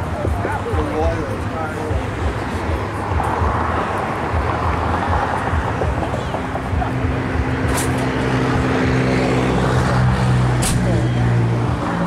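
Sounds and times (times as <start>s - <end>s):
sharp click: 10.6s - 10.9s.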